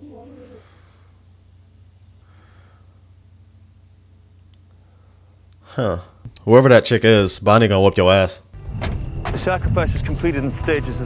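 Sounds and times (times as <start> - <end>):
faint steady low hum: 0.0 - 8.6.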